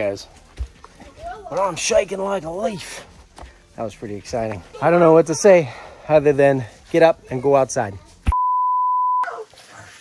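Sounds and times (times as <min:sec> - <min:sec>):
censor bleep tone: 0:08.3 - 0:09.3.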